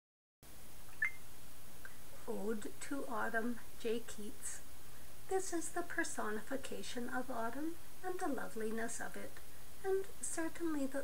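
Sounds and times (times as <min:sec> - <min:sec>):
low background noise: 0:00.4 - 0:11.0
short high-pitched blip: 0:01.0 - 0:01.2.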